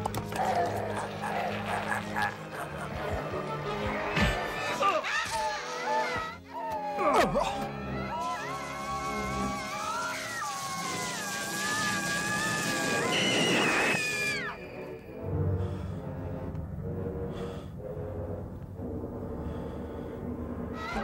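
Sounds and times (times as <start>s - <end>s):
high wavering cat-like screech: 8.1s - 15.0s
low dark sustained music: 14.3s - 21.0s.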